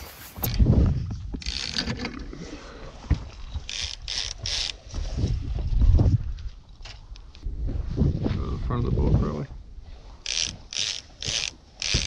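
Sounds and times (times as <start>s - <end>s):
rustling and scraping gear: 0.0s - 7.4s, 9.9s - 12.0s.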